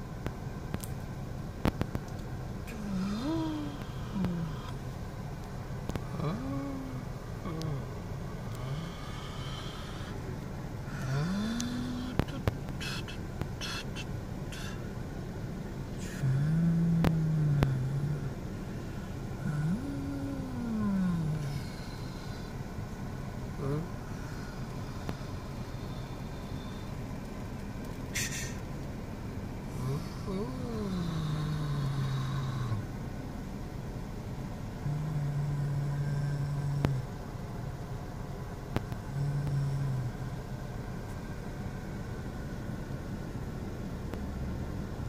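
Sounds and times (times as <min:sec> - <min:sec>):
steady low hum: 0:00.0 - 0:45.0
person making engine noises: 0:01.7 - 0:15.0, 0:15.8 - 0:28.9, 0:29.6 - 0:33.0, 0:34.7 - 0:37.9, 0:38.7 - 0:45.0.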